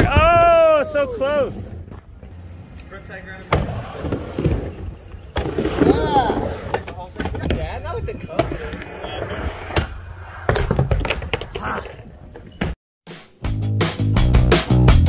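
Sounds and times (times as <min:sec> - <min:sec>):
skateboard wheels rumbling: 0:01.5 - 0:12.6.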